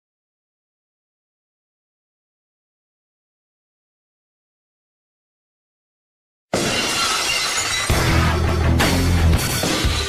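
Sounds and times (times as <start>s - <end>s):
heavy bass music: 7.9s - 10.0s.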